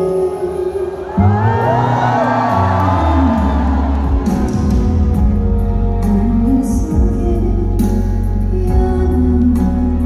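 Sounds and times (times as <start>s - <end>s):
audience cheering and whooping: 1.1s - 5.5s
live band music with heavy bass: 1.3s - 10.0s.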